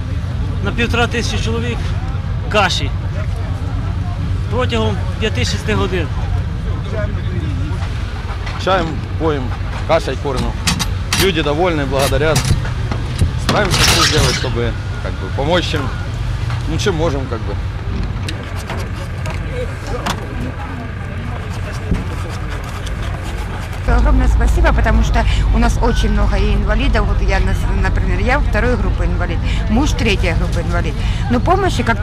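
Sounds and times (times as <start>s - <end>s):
people talking: 0.0s - 12.6s, 13.4s - 17.6s, 18.3s - 32.0s
engine running: 0.0s - 32.0s
heavy low rumble: 0.0s - 32.0s.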